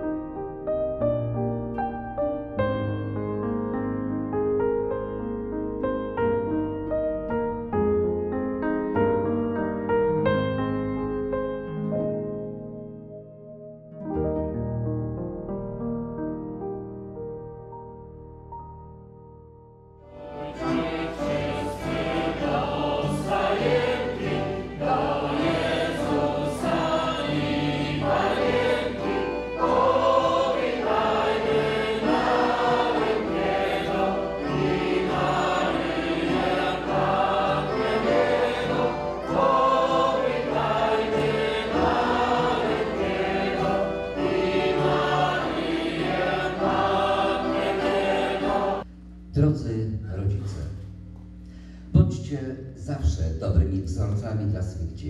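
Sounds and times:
guitar: 0:00.0 - 0:15.9, 0:20.0 - 0:48.8
keyboard: 0:00.0 - 0:52.1
accordion: 0:20.0 - 0:48.8
violin: 0:20.1 - 0:48.8
group singing a carol: 0:20.2 - 0:48.9.

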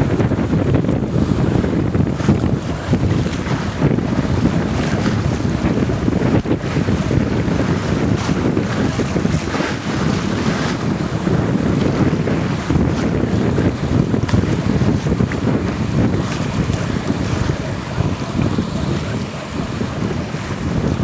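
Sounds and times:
water rushing along boat hull: 0:00.0 - 0:21.0
wind buffeting microphone: 0:00.0 - 0:21.0.

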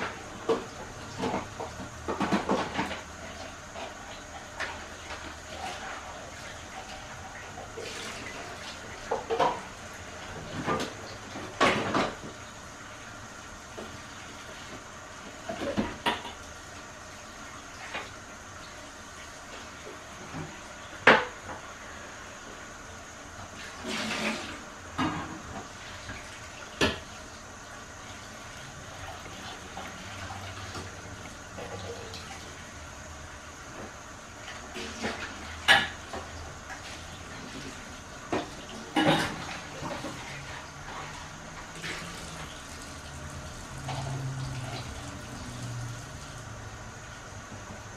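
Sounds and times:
water hissing from tap: 0:34.8 - 0:46.6.

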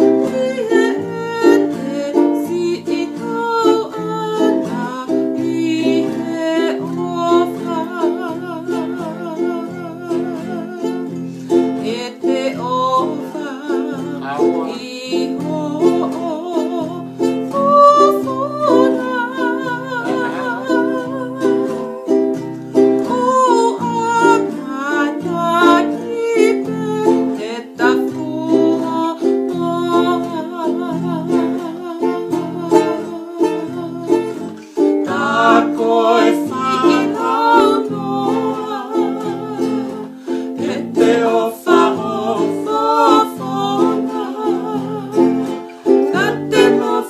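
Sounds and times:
acoustic guitar: 0:00.0 - 0:47.0
strummed ukulele: 0:00.0 - 0:47.0
woman singing with vibrato: 0:00.0 - 0:47.0.

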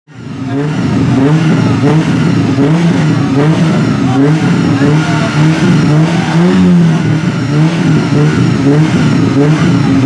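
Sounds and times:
car engine revving: 0:00.1 - 0:10.0.

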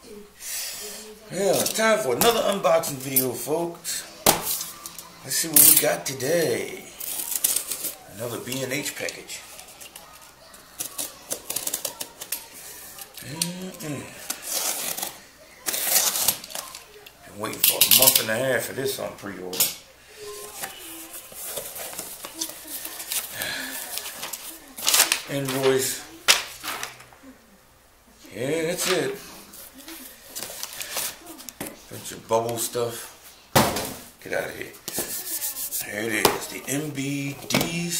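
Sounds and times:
bubble wrap rustling and crinkling: 0:14.2 - 0:17.0, 0:20.3 - 0:27.0.

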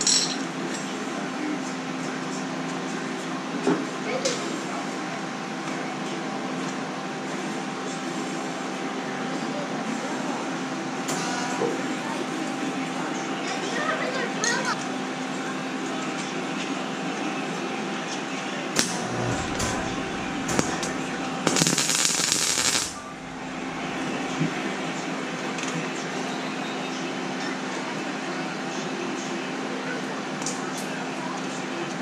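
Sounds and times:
welding arc crackle: 0:18.8 - 0:24.8
steady hum: 0:18.8 - 0:25.6.

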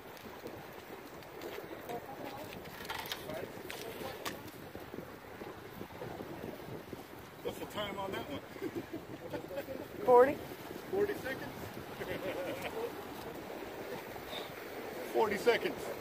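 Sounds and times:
surf: 0:00.0 - 0:16.0
wind on microphone: 0:00.0 - 0:16.0.

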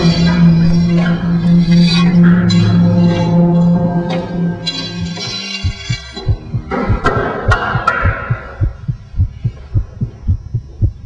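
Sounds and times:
low heartbeat thumps: 0:05.0 - 0:11.0.

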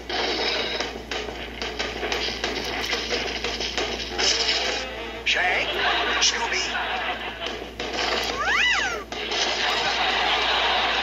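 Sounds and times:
cartoon music: 0:08.2 - 0:09.2.

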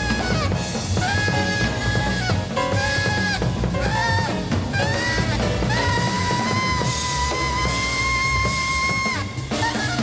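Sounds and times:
alto saxophone high note: 0:00.0 - 0:10.0
drum kit: 0:00.0 - 0:10.0
piano: 0:00.0 - 0:10.0
upright bass: 0:00.0 - 0:10.0.

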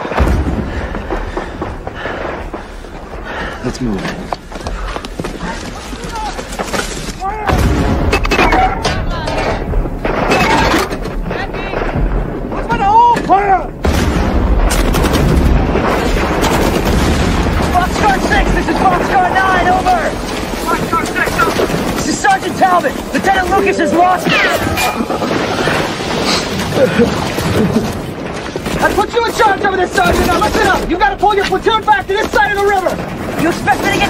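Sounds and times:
heavy booms: 0:00.0 - 0:03.6, 0:07.4 - 0:31.8
gunfire: 0:07.5 - 0:12.8, 0:13.8 - 0:34.0
men shouting: 0:17.8 - 0:25.1.

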